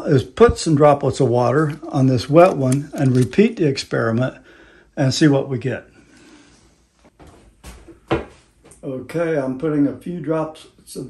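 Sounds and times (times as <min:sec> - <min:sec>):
rustling of objects moved: 0:06.4 - 0:08.8.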